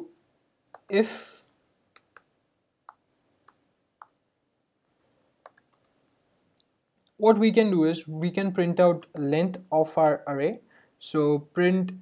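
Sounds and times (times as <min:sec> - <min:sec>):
keyboard keys typing: 0:00.7 - 0:01.0, 0:01.9 - 0:06.2, 0:07.0 - 0:10.3.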